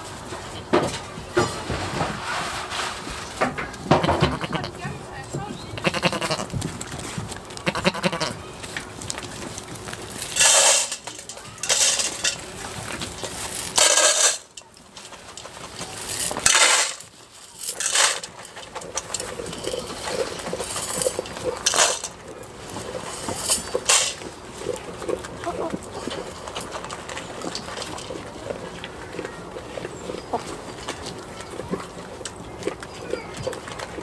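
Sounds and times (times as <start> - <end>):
loud rustling bursts: 1.1 - 4.9
goats bleating: 3.9 - 5.0, 5.7 - 6.6, 7.6 - 8.5.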